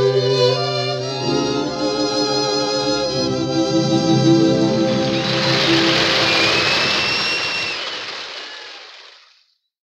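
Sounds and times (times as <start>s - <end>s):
audience applause: 4.8s - 9.5s.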